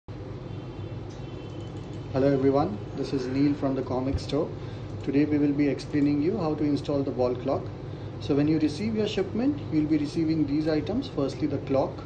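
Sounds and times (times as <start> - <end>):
low background rumble and hum: 0.1 - 12.0.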